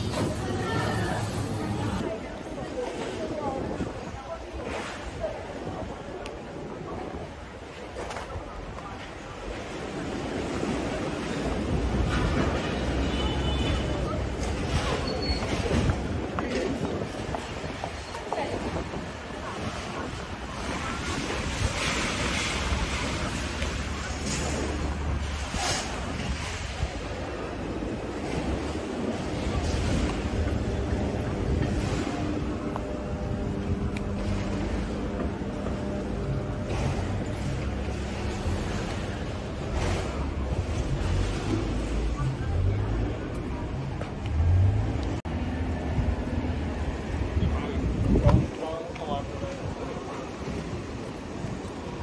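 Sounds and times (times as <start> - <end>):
road traffic rumble: 0.0 - 2.8, 8.3 - 52.0
wind on microphone: 0.0 - 12.8, 13.6 - 43.6, 45.2 - 52.0
city ambience: 0.0 - 52.0
passers-by talking: 0.0 - 52.0.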